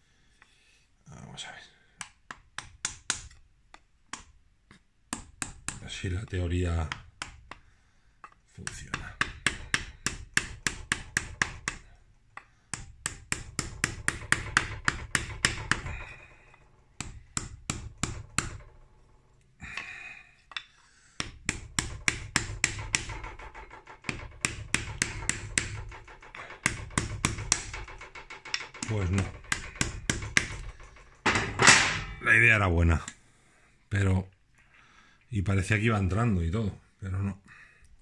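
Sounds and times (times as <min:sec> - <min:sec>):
hammer tapping on metal tube: 0:02.0 - 0:04.4, 0:05.1 - 0:18.8, 0:19.6 - 0:31.8.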